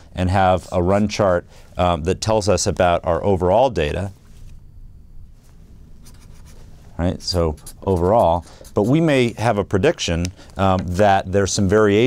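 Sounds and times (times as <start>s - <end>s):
marker scratching on paper: 6.0s - 6.7s, 7.3s - 9.4s.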